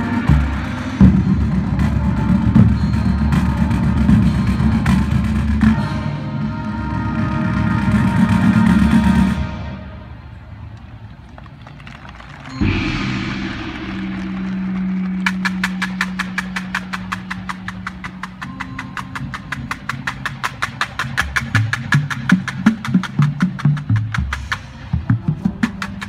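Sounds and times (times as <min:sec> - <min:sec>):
drumline sharp clicks: 0:10.7 - 0:26.0
low brass chord: 0:12.6 - 0:16.4
low bass drum notes: 0:12.6 - 0:16.5
cymbal crash: 0:12.6 - 0:17.8.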